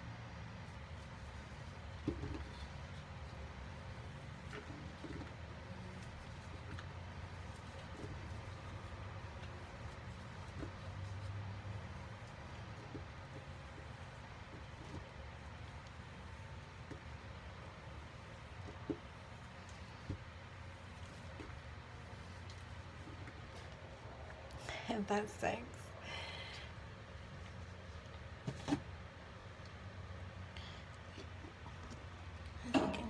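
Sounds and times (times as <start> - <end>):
low steady rumble: 0.0 - 33.0.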